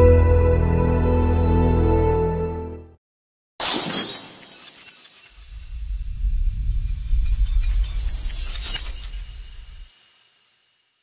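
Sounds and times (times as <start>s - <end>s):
glass shards tinkling: 7.6s - 9.7s.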